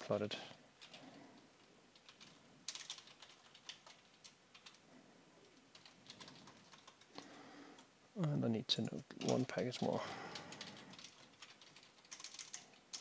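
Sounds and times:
keyboard typing: 0:00.8 - 0:01.0, 0:01.6 - 0:04.8, 0:05.4 - 0:07.9, 0:09.2 - 0:13.0.

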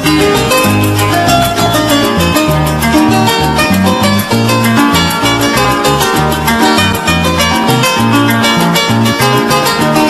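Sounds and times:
bass line: 0:00.0 - 0:10.0
fast shaker rhythm: 0:00.0 - 0:10.0
plucked strings: 0:00.0 - 0:10.0.

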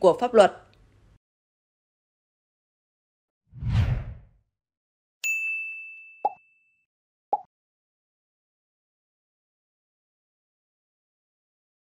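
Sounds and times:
whoosh with low boom: 0:03.6 - 0:04.3
bright bell ding: 0:05.2 - 0:06.7.

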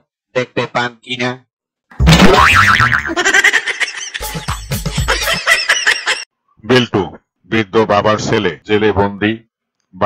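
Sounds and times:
cartoon hit: 0:02.0 - 0:03.1
wobbling boing: 0:02.0 - 0:03.1
music: 0:04.2 - 0:05.4.

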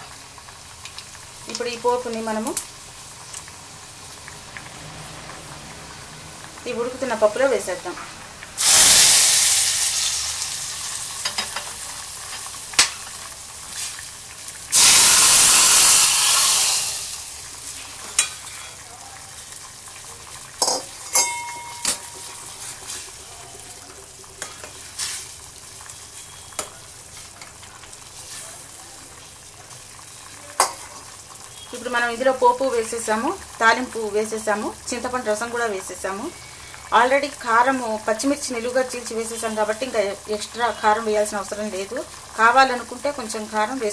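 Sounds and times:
hot oil sizzling in a pot: 0:00.0 - 0:43.9
steel ladle clinking against pot: 0:20.6 - 0:22.4.

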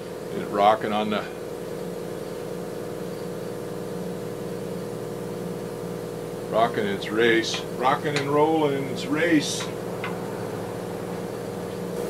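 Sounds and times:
motor humming steadily: 0:00.0 - 0:12.0.

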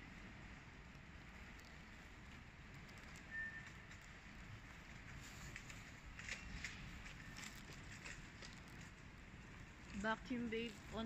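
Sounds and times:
faint store room tone: 0:00.0 - 0:11.0.

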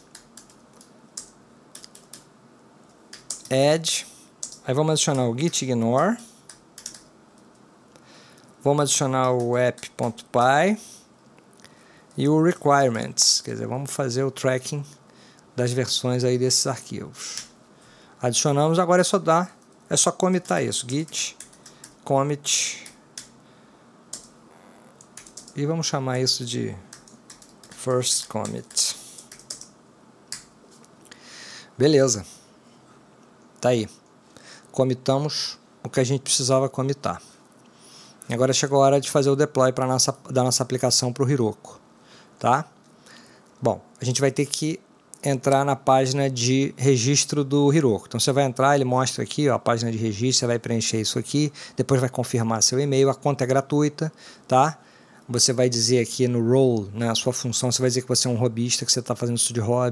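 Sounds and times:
light keyboard keystrokes: 0:00.0 - 0:02.3, 0:02.9 - 0:03.5, 0:04.4 - 0:07.6, 0:25.0 - 0:25.6, 0:26.9 - 0:29.7.

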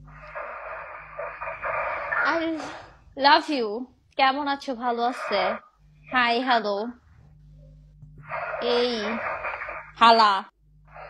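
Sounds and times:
hissing crackly noise: 0:00.0 - 0:03.0, 0:04.8 - 0:05.6, 0:08.2 - 0:10.0.

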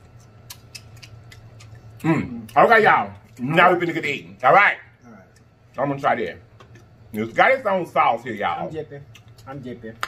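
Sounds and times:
man chewing food: 0:00.0 - 0:06.0, 0:09.0 - 0:09.6.

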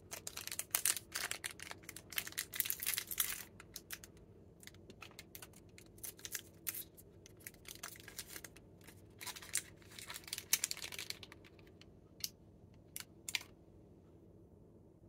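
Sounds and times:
plastic wrapper crinkling: 0:00.0 - 0:11.8.

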